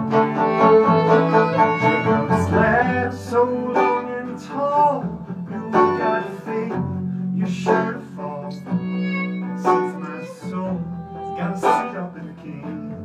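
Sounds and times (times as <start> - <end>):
acoustic guitar: 0.0 - 13.0
banjo picking: 0.0 - 13.0
fiddle: 0.0 - 13.0
upright bass: 0.0 - 13.0.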